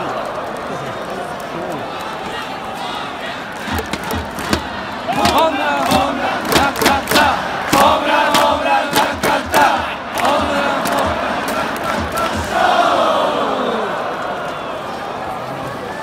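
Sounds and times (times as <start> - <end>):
stadium crowd singing in unison: 2.2 - 15.0.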